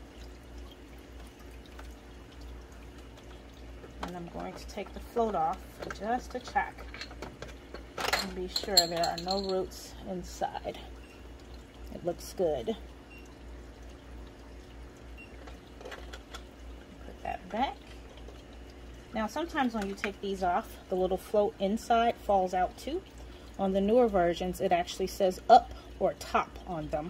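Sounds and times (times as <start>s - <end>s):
low steady hum: 0.0s - 27.0s
water dripping and trickling: 0.0s - 27.0s.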